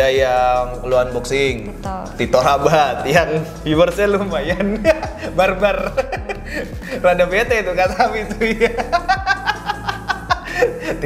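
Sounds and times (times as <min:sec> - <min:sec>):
background music with drum beat: 0:00.0 - 0:11.0
man laughing: 0:04.5 - 0:11.0.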